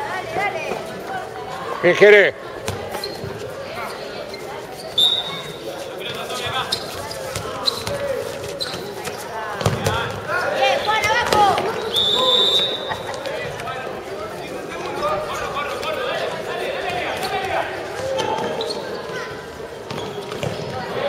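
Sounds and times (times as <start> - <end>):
players shouting: 9.4 - 19.6.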